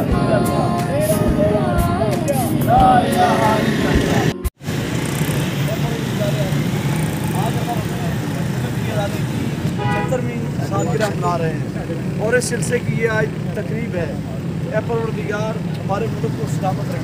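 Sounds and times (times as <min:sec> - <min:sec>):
people talking: 0:00.0 - 0:04.4, 0:05.6 - 0:17.0
roadside traffic noise: 0:00.0 - 0:17.0
vehicle horn toot: 0:09.7 - 0:10.4.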